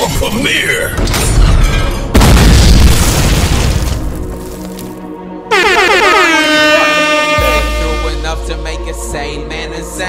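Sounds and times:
explosion-like boom: 2.1 - 4.4.

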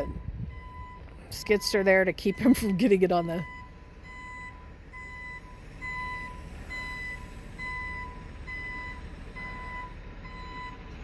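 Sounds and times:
diesel engine rumble: 0.0 - 11.0
truck backup alarm beeps: 0.0 - 11.0.

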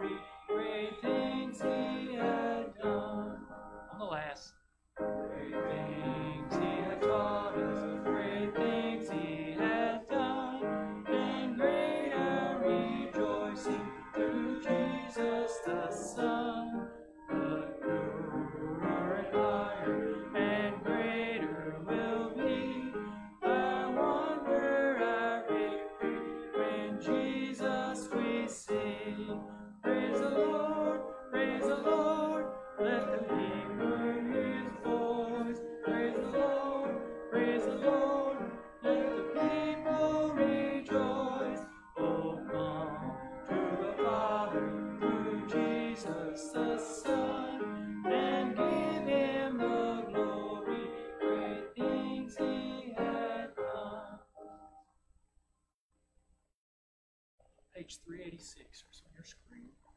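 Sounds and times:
congregation singing a hymn: 0.0 - 3.6, 5.1 - 54.3
piano accompaniment: 0.0 - 4.4, 5.0 - 54.8.

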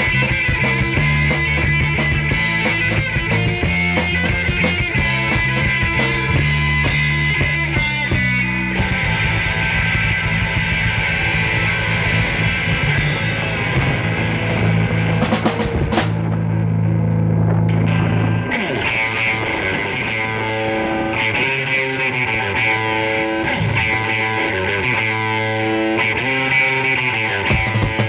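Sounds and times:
rock band playing: 0.0 - 28.0
strummed electric guitar: 0.0 - 28.0.

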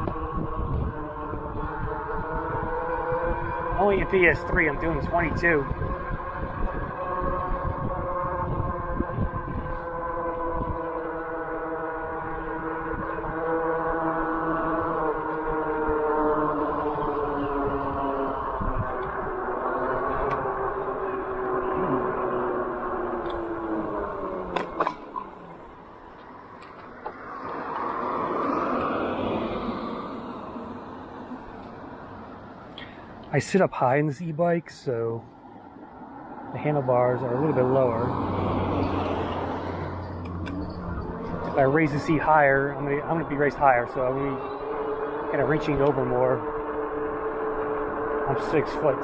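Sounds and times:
electric motor whining: 0.0 - 29.7, 38.2 - 49.0
wind rumbling on microphone: 0.0 - 32.4, 35.3 - 49.0.

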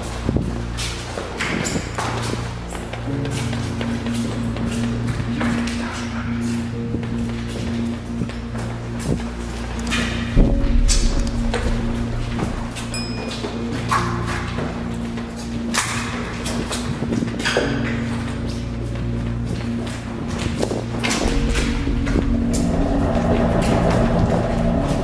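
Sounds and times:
music of sustained low notes: 0.0 - 25.0
sharp hits: 10.4 - 13.4, 21.1 - 25.0.

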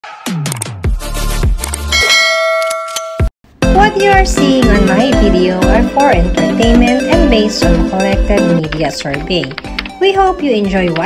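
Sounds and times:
upbeat tune with plucked melody: 3.5 - 11.0.

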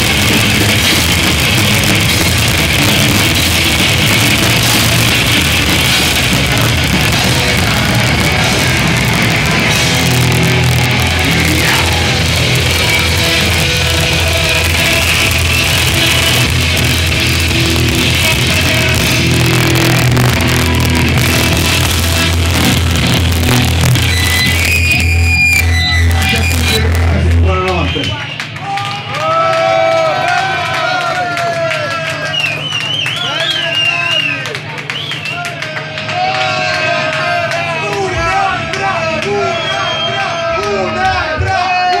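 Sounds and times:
bass guitar: 0.0 - 28.6
pounding drums: 0.0 - 29.0
distorted electric guitars: 0.0 - 33.1.

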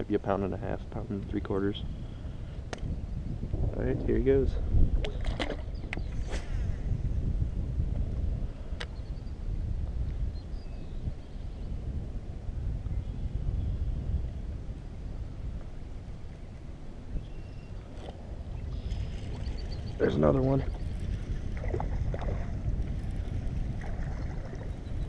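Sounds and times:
wind buffeting microphone: 0.0 - 25.0
water against a kayak: 4.6 - 25.0.

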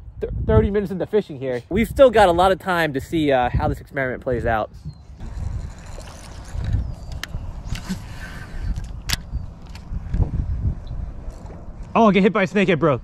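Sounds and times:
wind rumbling on microphone: 0.0 - 13.0
sharp clicks: 8.7 - 9.9.

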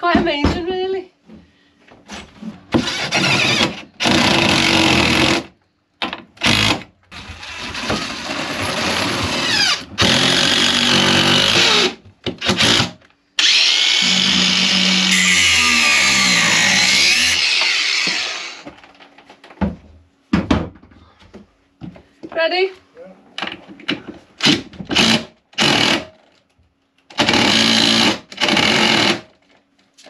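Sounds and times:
cordless drill drilling into wood: 2.8 - 5.5, 6.4 - 18.6, 24.5 - 26.0, 27.2 - 29.2.

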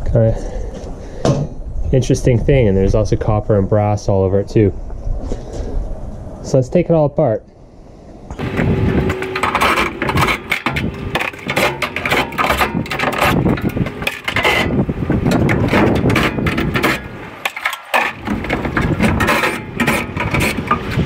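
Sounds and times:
metal clattering and knocking: 8.4 - 21.0.

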